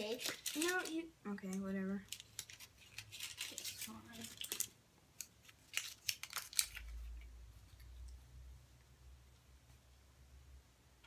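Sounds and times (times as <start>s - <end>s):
candy wrapper crackling: 0.0s - 7.9s.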